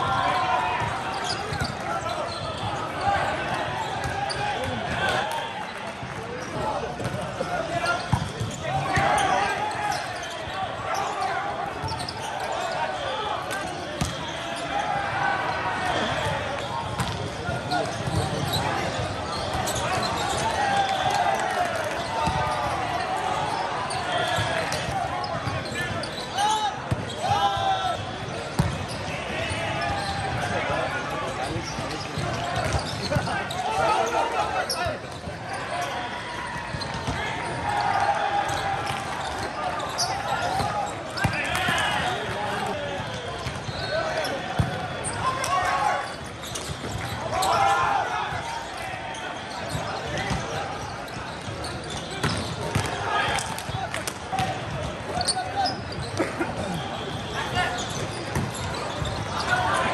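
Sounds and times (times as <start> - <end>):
players shouting: 0.0 - 59.9.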